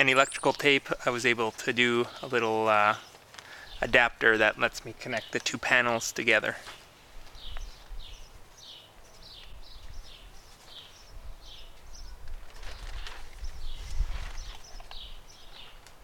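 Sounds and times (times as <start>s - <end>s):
small bird chirping: 0.0s - 0.8s, 7.4s - 15.8s.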